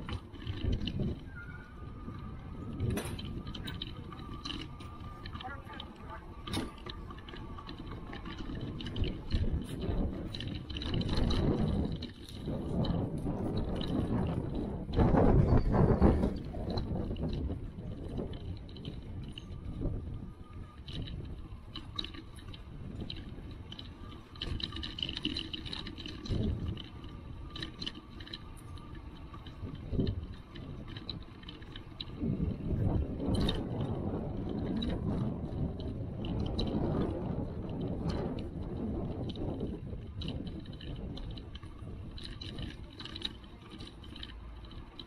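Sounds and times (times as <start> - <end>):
bicycle tyres rumbling on cobblestones: 0.0 - 45.0
bike rattles and clicks: 0.0 - 45.0.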